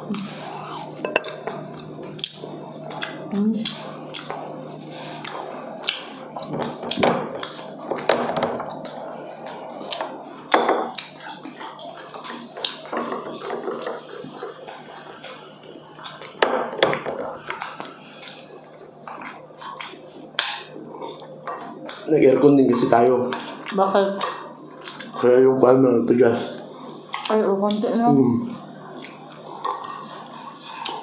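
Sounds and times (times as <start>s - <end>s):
chewing and mouth smacks: 0.2s - 4.6s, 5.2s - 8.1s, 10.9s - 16.4s, 17.4s - 22.1s, 23.3s - 25.2s, 27.1s - 27.8s, 28.6s - 31.0s
spoon clinking on metal plates: 1.0s - 1.3s.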